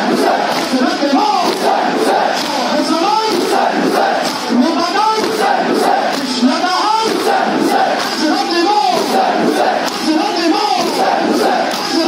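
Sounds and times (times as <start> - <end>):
crowd of men chanting and shouting: 0.0 - 12.0.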